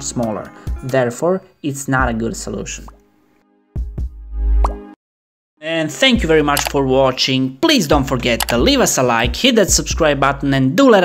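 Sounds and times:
background music with deep bass: 0.0 - 1.1, 2.0 - 4.9, 7.9 - 10.6.

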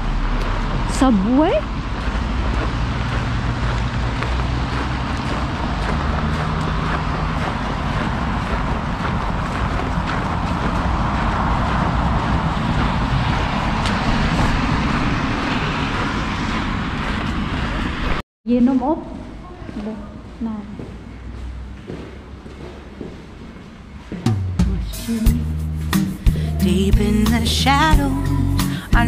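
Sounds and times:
low engine hum: 0.0 - 18.2
passing cars: 0.0 - 18.2.

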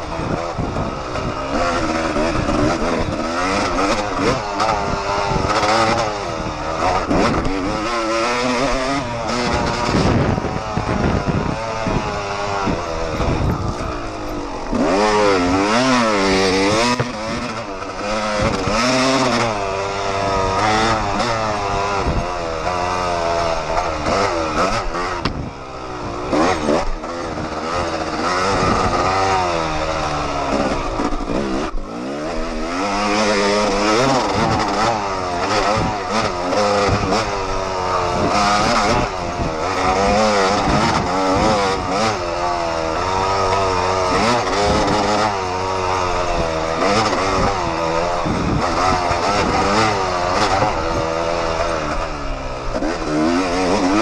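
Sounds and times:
dirt bike engine revving: 0.0 - 54.0.

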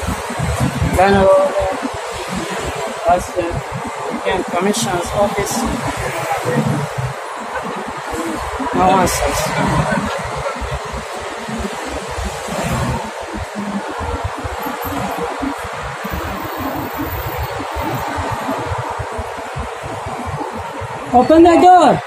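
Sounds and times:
street noise hiss: 0.0 - 22.0.

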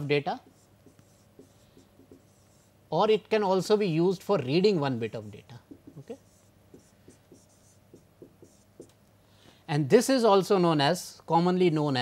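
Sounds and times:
stylus scratching on pen tablet: 0.0 - 2.8, 5.2 - 8.9.

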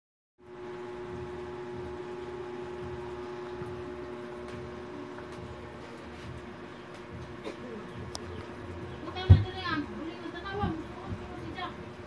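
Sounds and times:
steady mechanical hum: 0.4 - 12.0.

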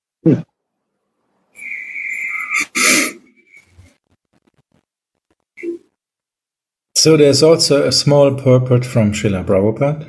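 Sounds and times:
person wheezing whistling breath: 1.6 - 3.8.

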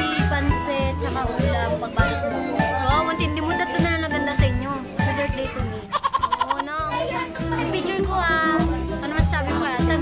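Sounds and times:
girls' voices: 0.0 - 10.0.

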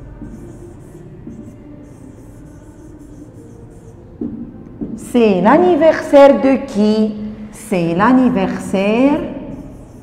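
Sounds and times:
pen scratching on whiteboard: 0.0 - 5.0, 8.8 - 10.0.

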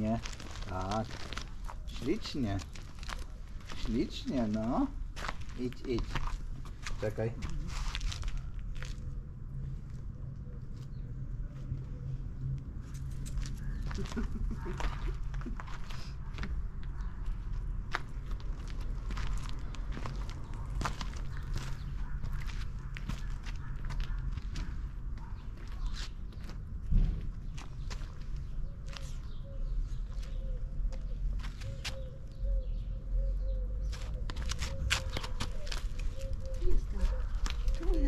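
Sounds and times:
footsteps on paving and gravel: 0.0 - 9.2, 12.9 - 32.2, 33.8 - 38.0
loud thump: 26.9 - 27.3.

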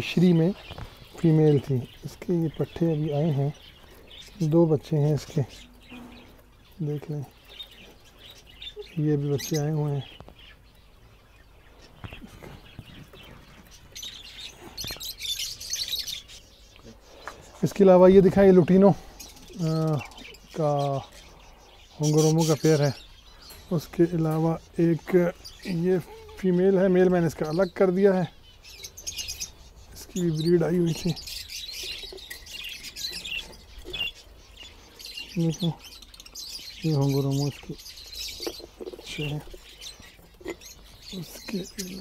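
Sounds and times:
budgerigars chirping: 0.0 - 42.0.

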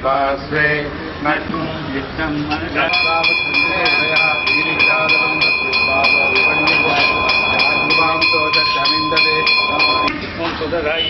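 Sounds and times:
man chanting: 2.7 - 10.1
brass bell ringing: 2.9 - 10.2.

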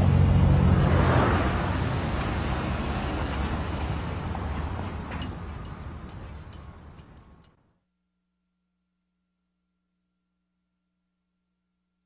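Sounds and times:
street traffic rumble: 0.0 - 7.6.

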